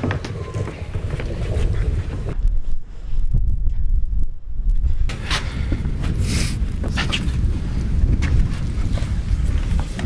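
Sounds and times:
wind noise on microphone: 0.4s - 10.0s.

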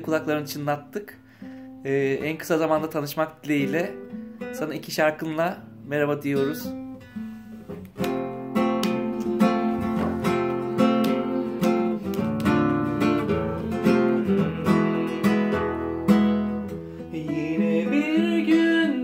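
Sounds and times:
classical guitar chords: 0.0s - 19.0s.

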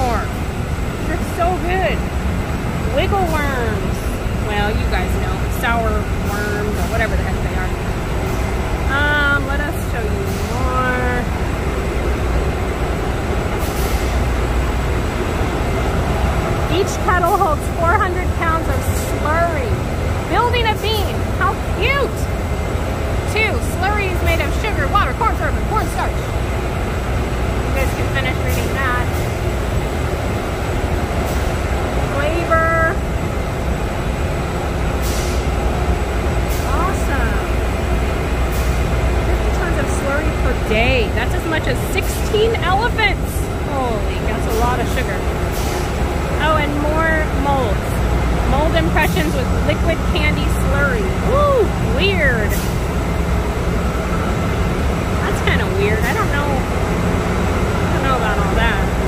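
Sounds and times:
low machine rumble: 0.0s - 59.0s.

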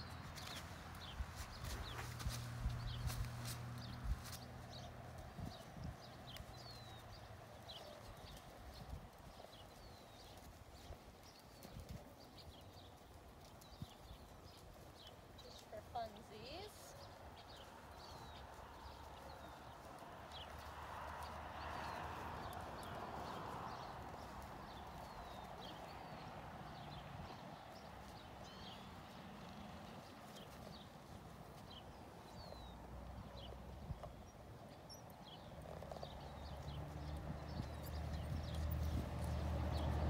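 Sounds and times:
hooves walking in sand: 0.0s - 40.0s
small birds chirping: 0.0s - 40.0s.

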